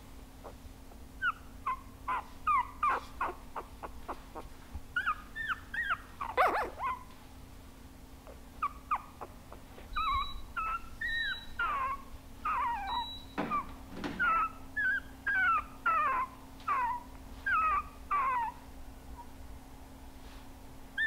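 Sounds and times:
puppies whimpering: 0:01.2 - 0:07.1, 0:08.3 - 0:18.6.

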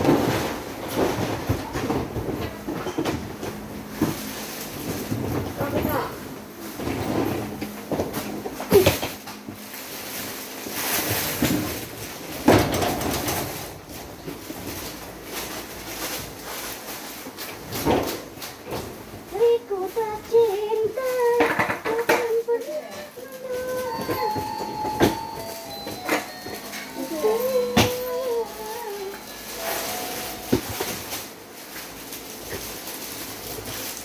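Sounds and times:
suitcase wheels rolling on hard floor: 0:00.0 - 0:34.0
knocks from bags being handled: 0:23.8 - 0:31.3.

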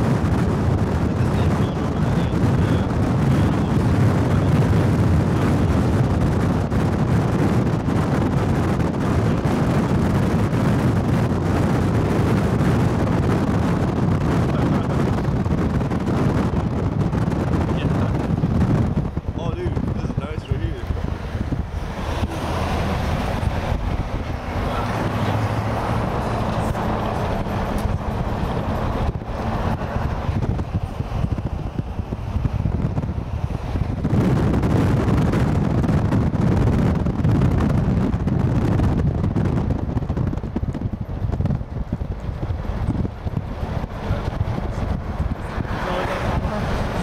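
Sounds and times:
car road and engine noise: 0:00.0 - 0:47.0
wind buffeting microphone: 0:00.0 - 0:47.0.

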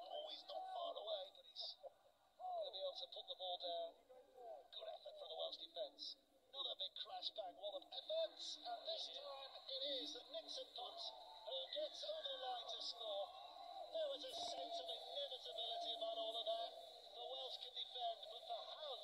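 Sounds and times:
muffled commentary through phone speaker: 0:00.0 - 0:19.0.

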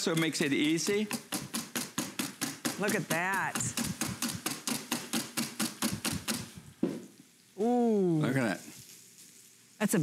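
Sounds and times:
whisk beating in steel bowl: 0:00.0 - 0:06.6
knock: 0:01.3 - 0:07.0.

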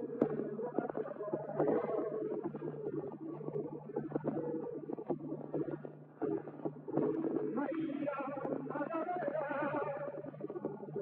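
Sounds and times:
flamenco guitar on old record: 0:00.0 - 0:11.0.

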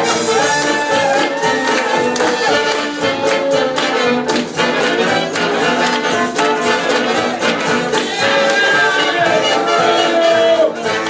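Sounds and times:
jazz band playing swing: 0:00.0 - 0:11.0.

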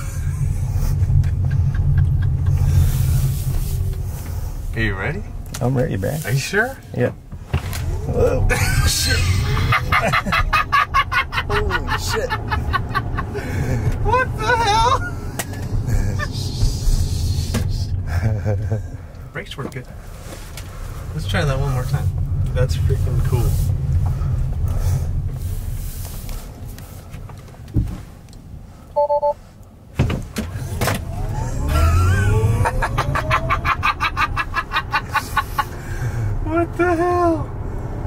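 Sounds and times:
road and tyre noise in car cabin: 0:00.0 - 0:38.0
person laughing: 0:01.2 - 0:02.8, 0:08.3 - 0:15.2, 0:15.9 - 0:16.8, 0:18.1 - 0:19.0, 0:31.3 - 0:35.8
electric motor whine rising in pitch: 0:31.0 - 0:33.6.

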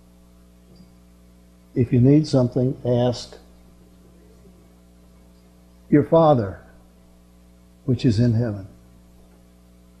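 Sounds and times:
electrical mains hum: 0:00.0 - 0:10.0
man speaking: 0:01.8 - 0:03.4, 0:05.9 - 0:06.7, 0:07.9 - 0:08.7.

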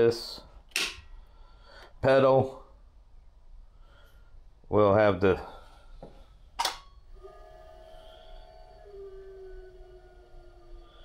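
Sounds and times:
turntable motor whining: 0:06.0 - 0:11.0.

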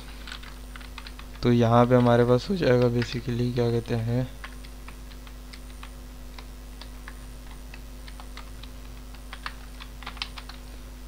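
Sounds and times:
steady low hum: 0:00.0 - 0:11.0
typing on computer keyboard: 0:00.2 - 0:03.2, 0:04.4 - 0:10.6.

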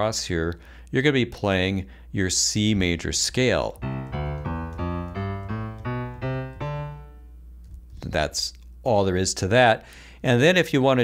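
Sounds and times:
ascending piano scale: 0:03.7 - 0:07.4.

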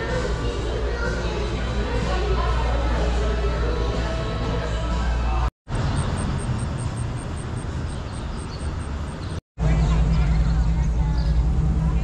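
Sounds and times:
background music: 0:00.0 - 0:05.5
low street rumble: 0:00.0 - 0:12.0.

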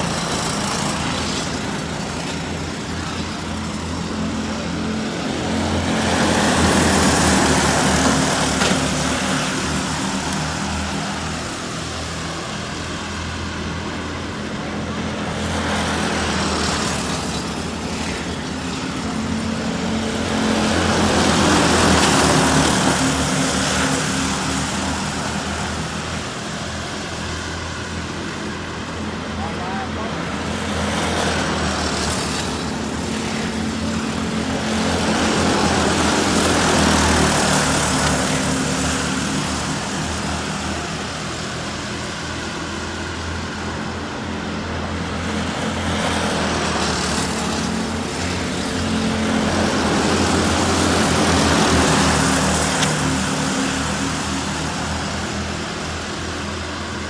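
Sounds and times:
go-kart engines racing: 0:00.0 - 0:57.0.

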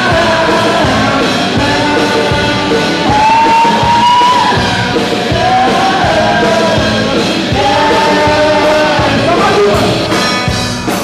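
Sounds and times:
grunge rock band playing: 0:00.0 - 0:11.0.

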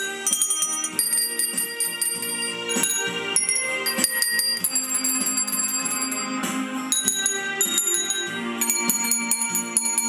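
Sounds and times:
handbells playing a melody: 0:00.0 - 0:10.0.

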